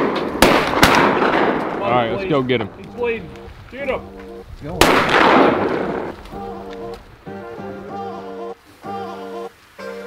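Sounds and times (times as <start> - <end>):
loud blast: 4.7 - 6.2.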